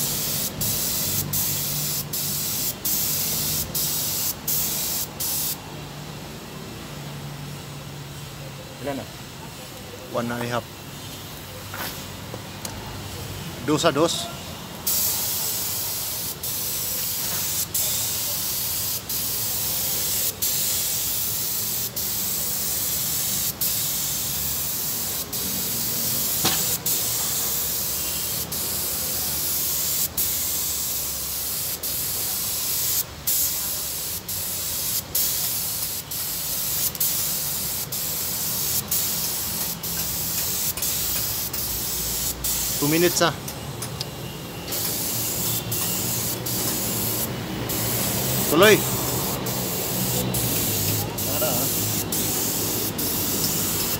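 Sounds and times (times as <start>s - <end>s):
paint spray gun hissing: 0.0s - 5.6s, 14.8s - 43.3s, 44.7s - 53.9s.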